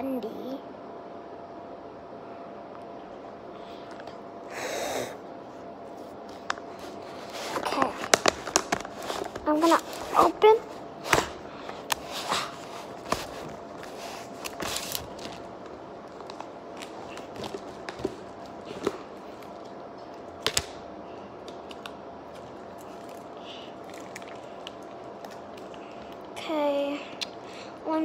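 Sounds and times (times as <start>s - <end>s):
wrapper crinkling: 6.4s - 10.4s, 12.8s - 20.8s, 21.5s - 26.3s.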